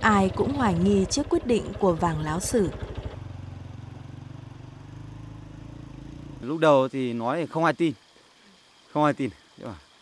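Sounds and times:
small motorbike engine running: 0.0 - 10.0.

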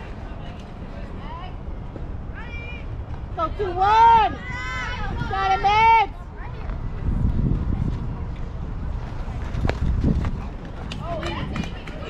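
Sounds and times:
people yelling and calling out: 0.0 - 6.8.

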